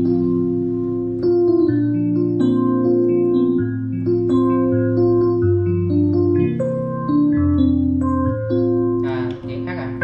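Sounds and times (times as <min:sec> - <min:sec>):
digital piano playing slow chords: 0:00.0 - 0:10.0.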